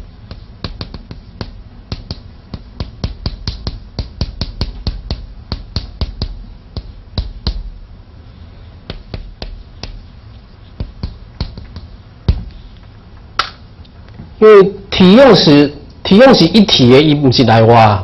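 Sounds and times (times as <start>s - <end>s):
chalk tapping on chalkboard: 0.0s - 7.8s, 8.8s - 12.6s.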